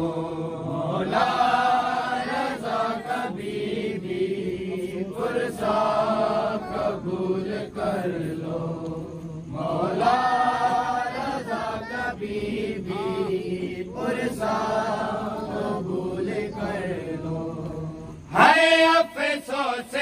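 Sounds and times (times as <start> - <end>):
men chanting a lament: 0.0 - 20.0.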